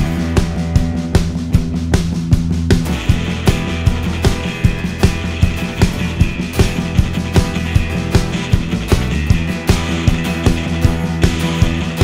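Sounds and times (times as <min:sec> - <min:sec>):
drum kit beating quick rhythm: 0:00.0 - 0:12.0
live rock band playing: 0:00.0 - 0:12.0.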